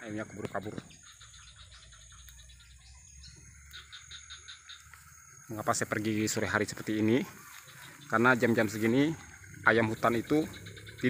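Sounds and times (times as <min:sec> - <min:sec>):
animal chirping rapidly: 0:00.2 - 0:04.9, 0:06.8 - 0:11.0.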